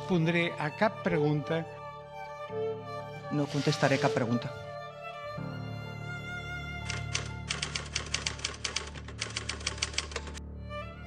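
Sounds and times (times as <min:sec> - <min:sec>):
typewriter key clicks: 0:06.9 - 0:10.4.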